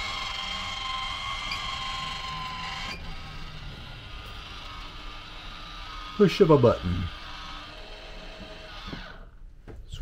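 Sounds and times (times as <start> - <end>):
vent fan motor whirring: 0.0 - 9.8.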